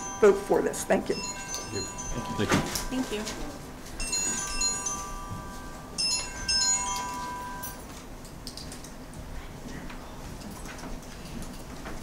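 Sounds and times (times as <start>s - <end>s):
chime-like metallic ringing: 0.0s - 7.9s.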